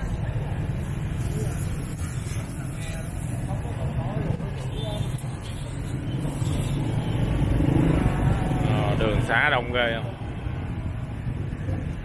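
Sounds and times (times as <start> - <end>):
faint voices: 0.0 - 12.0
motor scooter engines rumbling: 0.0 - 12.0.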